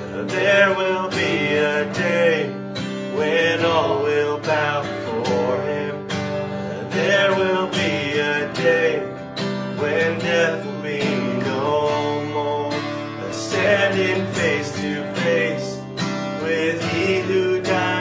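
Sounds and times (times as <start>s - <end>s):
acoustic guitar strumming: 0.0s - 18.0s
men singing worship chorus: 0.0s - 18.0s.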